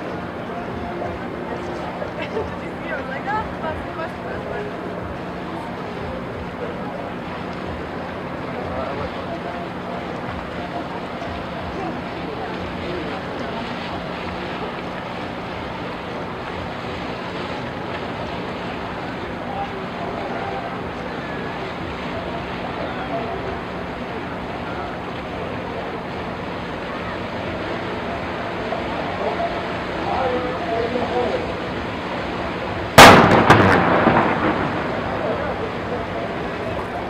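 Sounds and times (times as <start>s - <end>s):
water washing: 0.0s - 37.0s
cannon bang: 33.0s - 35.4s
rolling echo with cracks: 33.0s - 36.0s.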